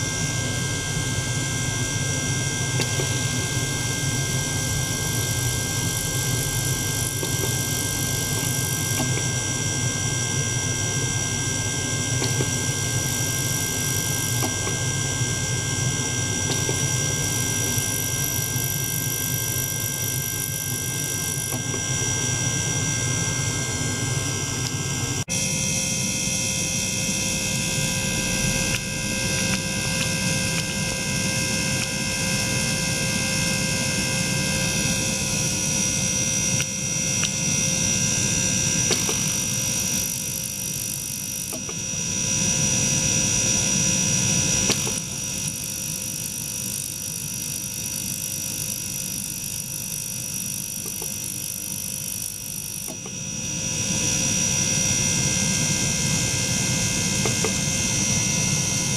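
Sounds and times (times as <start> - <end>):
ultrasonic cleaner hum: 0.0 - 58.9.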